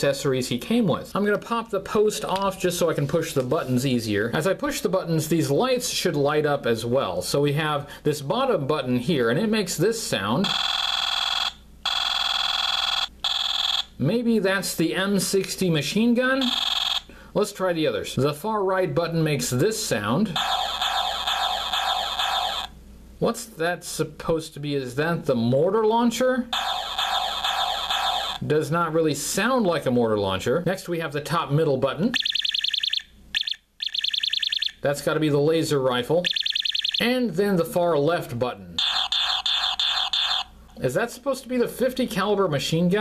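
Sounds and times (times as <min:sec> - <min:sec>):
tinny electronic gunfire effect: 0:20.4 - 0:22.7, 0:26.6 - 0:28.4, 0:38.8 - 0:40.5.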